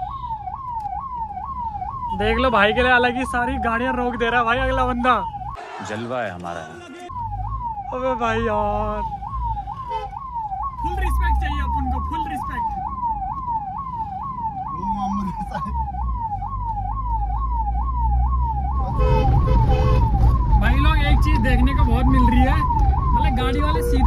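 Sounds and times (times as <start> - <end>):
ambulance siren wailing: 0.0 - 24.0.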